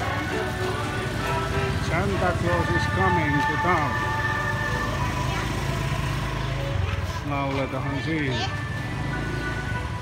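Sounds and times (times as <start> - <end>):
christmas music: 0.0 - 10.0
traffic: 0.0 - 10.0.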